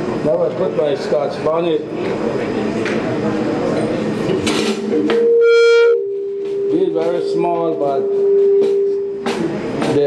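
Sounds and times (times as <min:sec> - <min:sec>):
low background talk: 0:00.0 - 0:05.3, 0:06.3 - 0:10.0
microphone feedback howl: 0:05.1 - 0:09.2.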